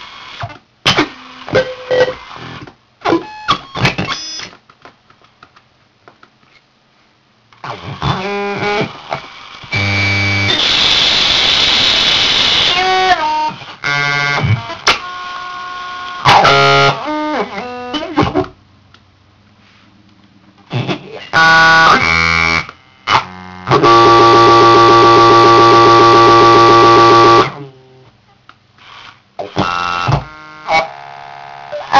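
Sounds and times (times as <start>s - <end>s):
harsh digital noise: 7.6s - 17.0s.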